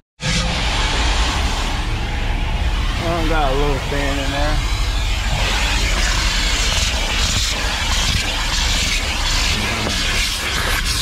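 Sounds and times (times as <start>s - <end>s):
vacuum cleaner running: 0.2s - 11.0s
vacuum sucking sand off mat: 5.3s - 11.0s.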